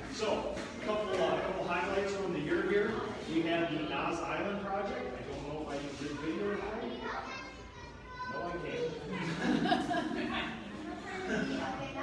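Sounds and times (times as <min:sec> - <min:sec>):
people talking: 0:00.1 - 0:12.0.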